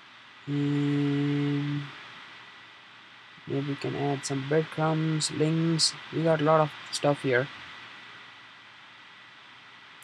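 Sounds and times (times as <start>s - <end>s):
laptop fan hiss: 0.0s - 10.0s.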